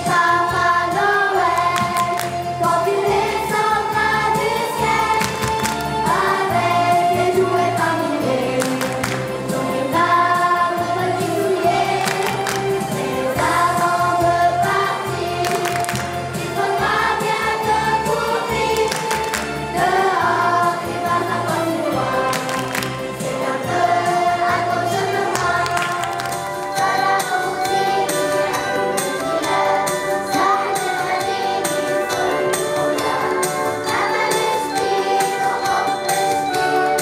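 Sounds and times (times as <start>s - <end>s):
children's choir singing: 0.0s - 37.0s
instrumental accompaniment with bass: 0.0s - 37.0s.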